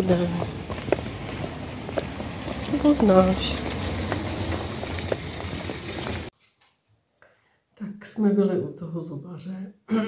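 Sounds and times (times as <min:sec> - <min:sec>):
footsteps on concrete: 0:00.0 - 0:06.3.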